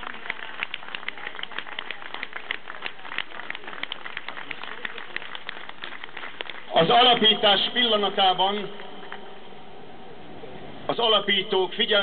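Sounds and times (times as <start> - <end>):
crowd applauding: 0.0 - 7.4.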